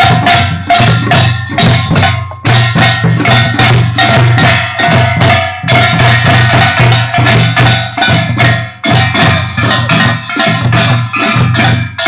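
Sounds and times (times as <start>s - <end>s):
drums in rapid strokes: 0.0s - 12.0s
small brass gongs clanging: 0.0s - 12.0s.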